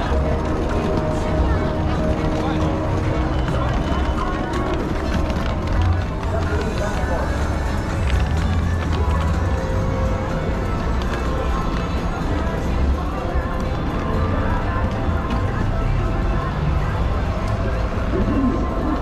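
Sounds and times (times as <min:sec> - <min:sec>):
footsteps on paving: 0:00.0 - 0:16.0
music from shop loudspeakers: 0:00.0 - 0:19.0
passers-by voices: 0:00.0 - 0:19.0.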